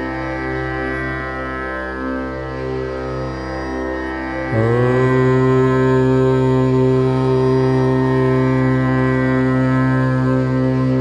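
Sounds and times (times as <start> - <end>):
droning music with overtones: 0.0 - 11.0.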